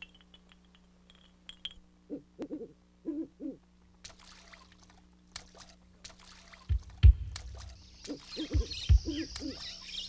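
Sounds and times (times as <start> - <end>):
light clinks: 0.0 - 1.9
water trickling and splashing: 4.0 - 9.8.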